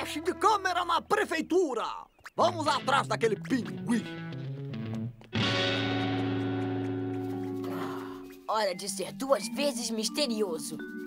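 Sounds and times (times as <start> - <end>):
guitar chord ringing: 2.7 - 7.7.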